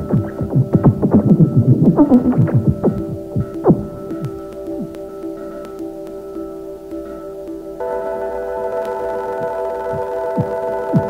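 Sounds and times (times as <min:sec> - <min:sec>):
droning synth chord: 0:00.0 - 0:11.0
falling-pitch electronic blips: 0:00.0 - 0:11.0.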